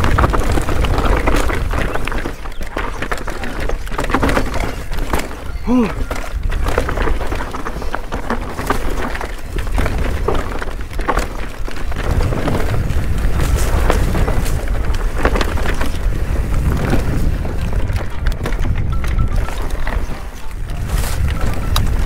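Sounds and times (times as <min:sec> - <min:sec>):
bike tyres knocking and rattling: 0:00.0 - 0:22.0
wind rumbling on microphone: 0:00.0 - 0:22.0.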